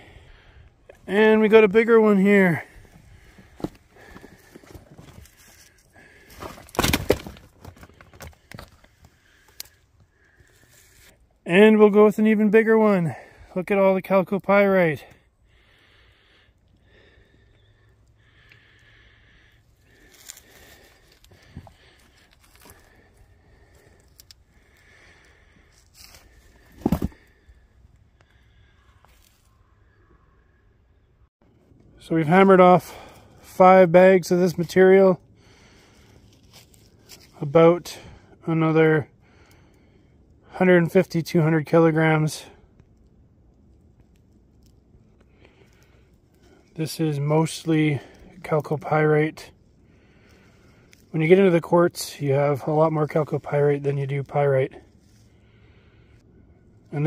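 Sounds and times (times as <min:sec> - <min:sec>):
gloved hand rustling ore: 0:02.3 - 0:11.2
rock scraping against rocks: 0:26.0 - 0:27.4.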